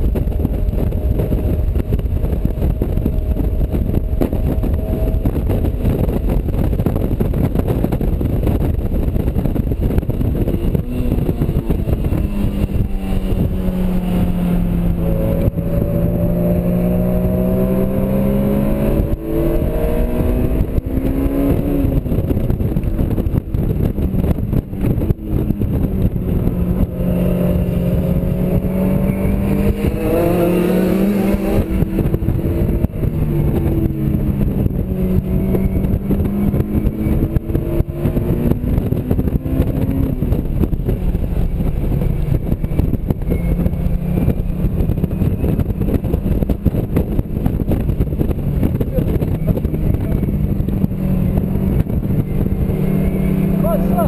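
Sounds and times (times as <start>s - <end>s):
car engine revving: 0.0s - 54.0s
wind and road noise: 0.0s - 54.0s.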